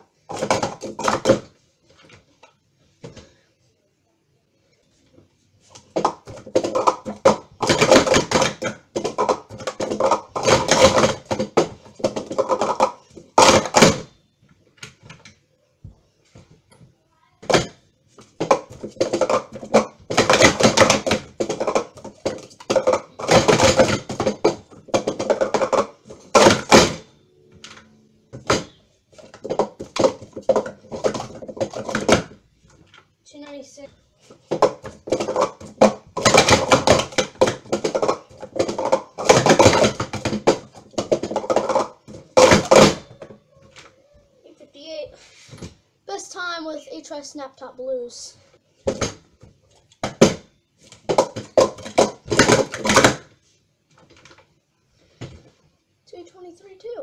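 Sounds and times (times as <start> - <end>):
plastic cups clattering: 0.2 - 3.4, 5.7 - 14.2, 17.4 - 33.1, 34.2 - 43.9, 48.8 - 53.4.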